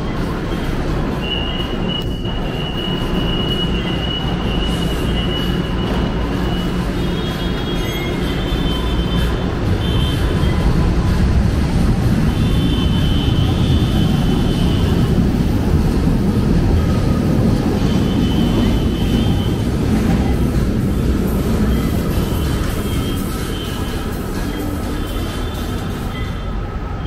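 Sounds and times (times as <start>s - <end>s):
train rumbling along track: 0.0s - 27.0s.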